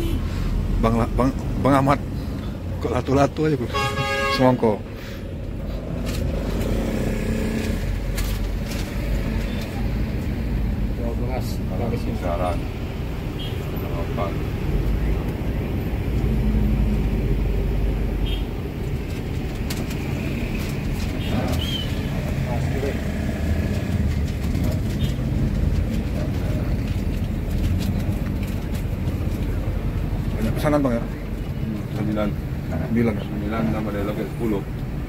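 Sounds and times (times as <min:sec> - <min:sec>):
bus engine rumble: 0:00.0 - 0:35.0
road and traffic noise: 0:00.0 - 0:35.0.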